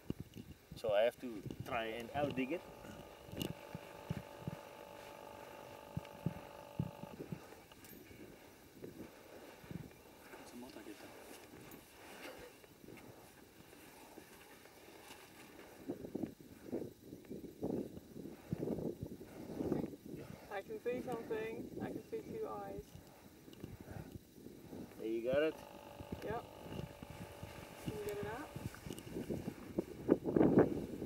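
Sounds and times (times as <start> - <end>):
steady hum: 1.7 - 7.8, 9.0 - 11.7, 24.6 - 29.7.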